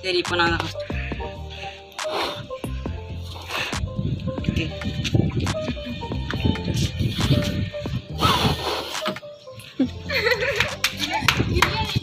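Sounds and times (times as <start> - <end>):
hand claps: 10.4 - 12.0.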